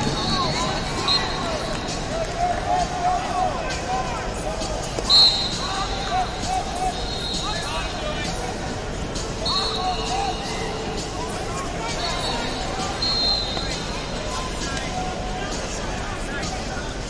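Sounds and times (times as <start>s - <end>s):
arena crowd hubbub: 0.0s - 17.0s
thin high whistle tones: 0.2s - 1.6s, 5.0s - 6.2s, 6.8s - 7.7s, 9.4s - 10.8s, 11.9s - 13.9s
loud whistle blast: 5.1s - 5.8s, 6.9s - 7.7s, 9.4s - 10.6s, 13.0s - 13.8s.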